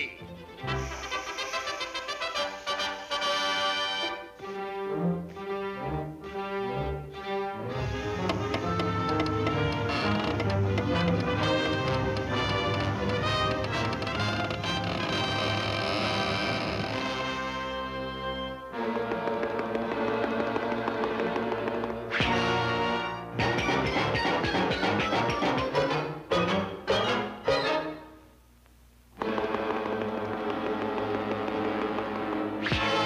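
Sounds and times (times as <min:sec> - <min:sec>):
orchestra playing lively music: 0:00.0 - 0:14.7, 0:17.3 - 0:28.1, 0:29.2 - 0:33.0.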